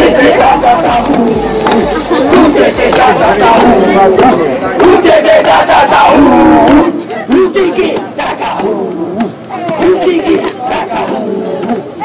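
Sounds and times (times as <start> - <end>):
men shouting a chant: 0.0 - 12.0.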